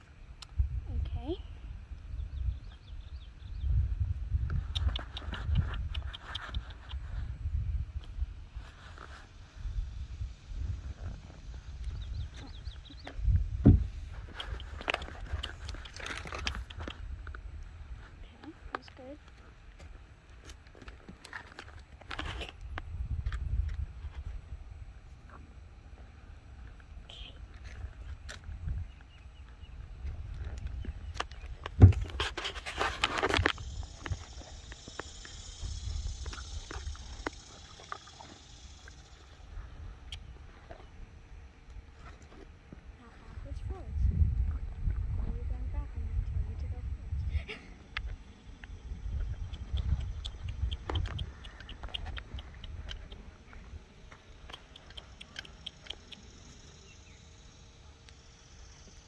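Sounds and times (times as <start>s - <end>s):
low microphone rumble: 0.0s - 20.0s, 22.4s - 54.5s
saddle creaks and clicks: 14.1s - 17.4s, 20.5s - 24.2s, 49.2s - 53.2s
hooves on dirt: 48.1s - 56.2s.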